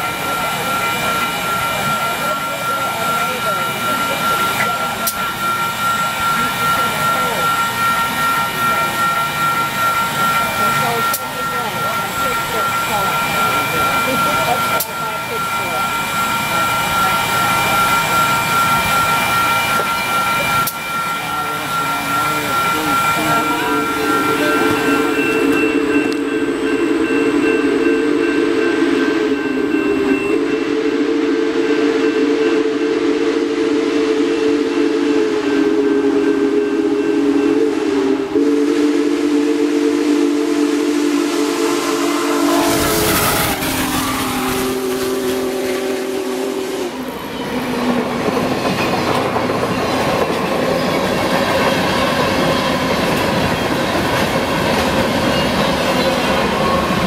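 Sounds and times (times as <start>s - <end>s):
steam whistle blasts: 0.0s - 48.3s, 50.5s - 57.0s
train cars rumbling: 0.0s - 57.0s
locomotive passing rush: 33.2s - 57.0s.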